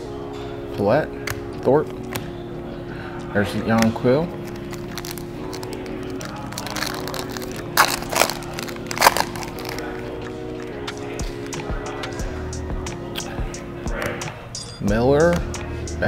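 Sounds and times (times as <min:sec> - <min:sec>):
background music held notes: 0:00.0 - 0:16.0
foil wrapper crinkling: 0:04.4 - 0:10.1.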